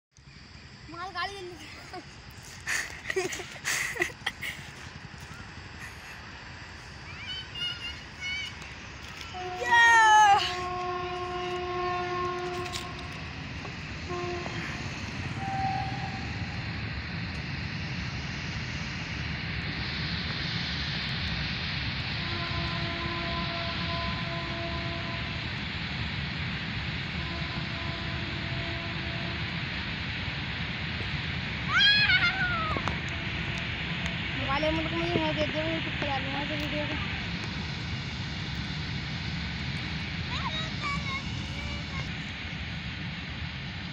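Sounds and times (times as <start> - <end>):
freight train rumbling: 0.3 - 43.9
train horn: 9.2 - 16.7, 22.2 - 25.5, 27.0 - 29.6, 33.0 - 33.6.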